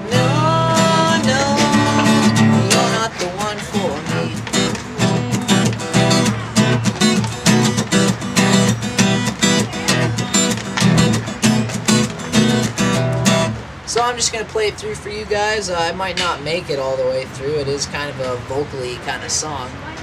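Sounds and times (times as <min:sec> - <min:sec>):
acoustic guitar strumming: 0:00.0 - 0:14.2.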